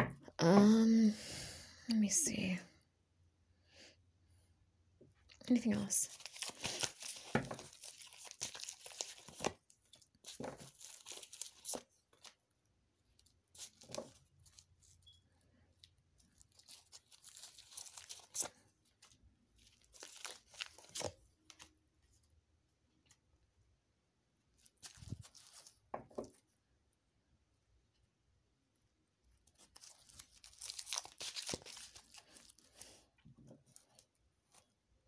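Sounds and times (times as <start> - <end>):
cards rustling and clicking: 6.1 - 12.4, 16.3 - 21.7, 29.5 - 32.9.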